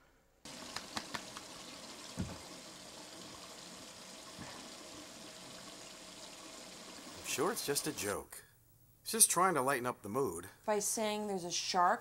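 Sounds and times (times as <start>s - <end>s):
running water rushing: 0.5s - 8.2s
dull thump: 2.1s - 2.5s.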